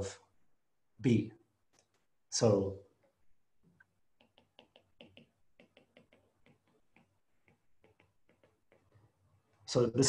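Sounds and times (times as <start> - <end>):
stylus tapping on glass screen: 3.7 - 9.2.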